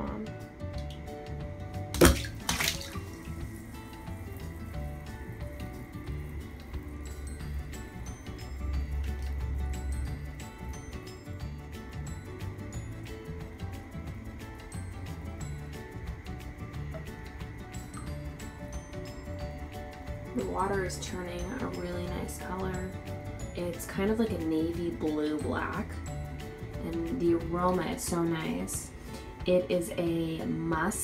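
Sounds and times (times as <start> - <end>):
background music: 0.0 - 31.0
bath bomb splashing into water: 1.8 - 5.8.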